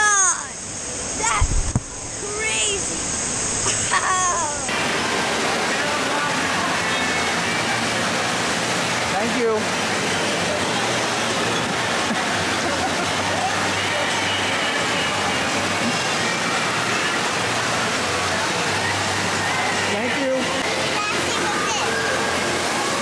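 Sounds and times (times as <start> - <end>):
falling and splashing water: 0.0 - 23.0
faint voices: 4.0 - 23.0.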